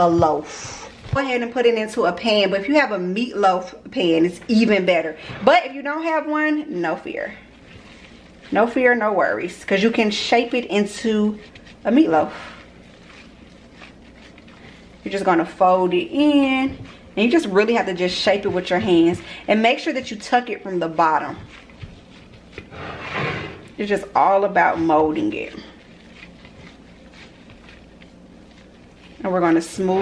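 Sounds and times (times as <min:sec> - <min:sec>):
soft squishing of ground meat: 0:00.0 - 0:05.0, 0:05.8 - 0:22.8, 0:23.6 - 0:30.0.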